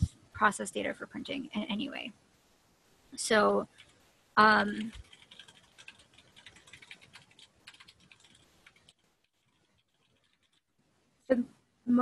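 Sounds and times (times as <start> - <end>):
computer keyboard typing: 3.6 - 4.0, 4.6 - 10.6.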